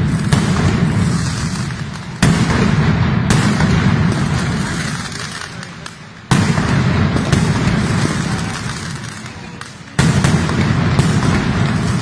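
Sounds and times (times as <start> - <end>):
firework bangs: 0.0 - 12.0.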